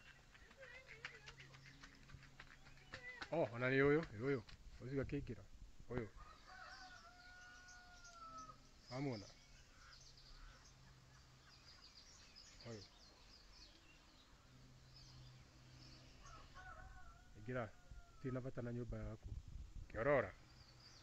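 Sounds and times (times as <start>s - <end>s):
small birds chirping: 0.0s - 5.3s, 5.9s - 18.4s, 19.9s - 21.0s
distant rooster crowing: 6.1s - 8.6s, 16.1s - 18.5s.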